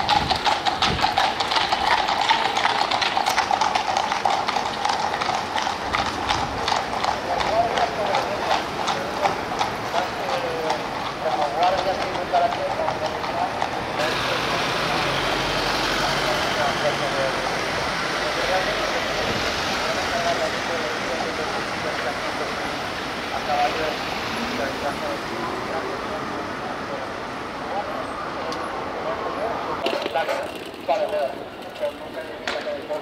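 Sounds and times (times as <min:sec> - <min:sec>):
horse hooves clip-clopping on road: 0:00.0 - 0:28.8, 0:29.7 - 0:33.0
crowd chatter: 0:00.0 - 0:33.0
street noise: 0:00.0 - 0:33.0.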